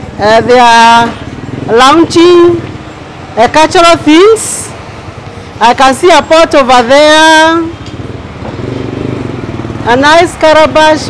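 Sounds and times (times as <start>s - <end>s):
motorcycle engine running: 0.0s - 3.8s, 7.0s - 11.0s.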